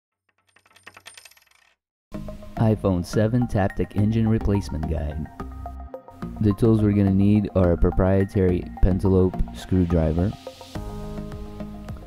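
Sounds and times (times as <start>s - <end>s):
small clinks: 0.4s - 1.8s.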